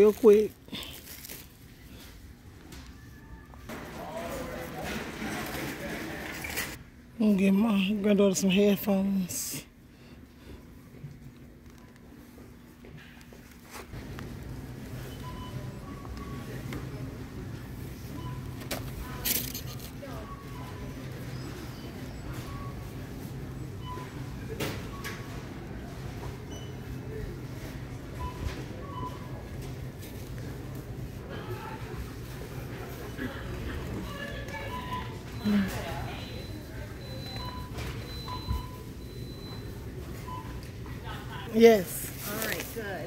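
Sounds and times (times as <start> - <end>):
shopping cart rattling: 3.7 - 6.8, 18.6 - 20.6.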